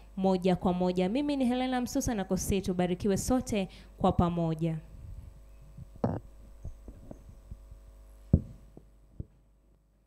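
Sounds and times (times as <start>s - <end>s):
electrical hum: 0.0s - 10.0s
microphone handling thumps: 4.9s - 9.4s.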